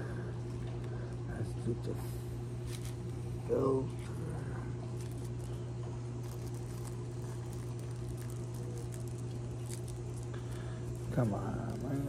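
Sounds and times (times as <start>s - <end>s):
steady low hum: 0.0s - 12.0s
rolling paper rustling: 2.6s - 3.2s, 3.9s - 12.0s.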